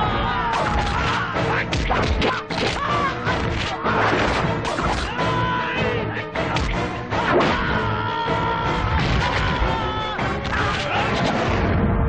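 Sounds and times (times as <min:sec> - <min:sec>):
film background music: 0:00.0 - 0:12.0
punch and kick hits: 0:01.7 - 0:05.2, 0:06.5 - 0:07.7.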